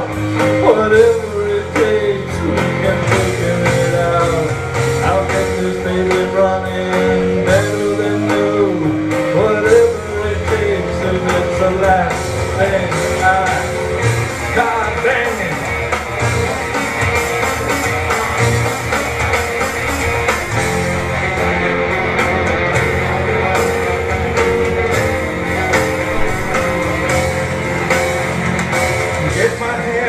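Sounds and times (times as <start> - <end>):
person singing: 0.0 - 13.9
electric guitar: 0.0 - 30.0
live rock and roll band: 0.0 - 30.0.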